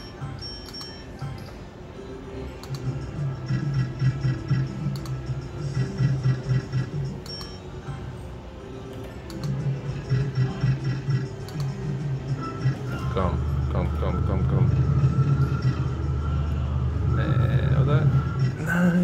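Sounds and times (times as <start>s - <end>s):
slot machine electronic music: 0.0s - 19.0s.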